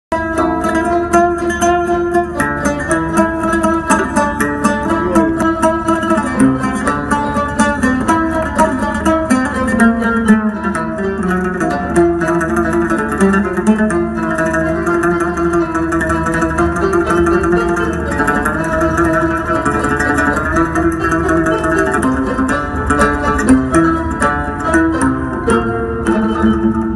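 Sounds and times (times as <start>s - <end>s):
plucked lute melody: 0.1s - 26.9s
quick plucked zither notes: 0.1s - 26.9s.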